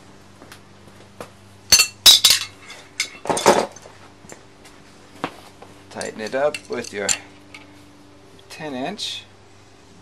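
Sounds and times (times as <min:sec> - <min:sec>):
metal hand tools clanking: 0:01.7 - 0:03.8, 0:06.0 - 0:07.7.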